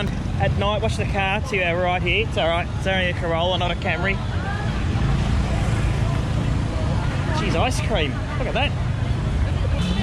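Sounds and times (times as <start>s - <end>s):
motorbikes and cars passing: 0.0s - 10.0s.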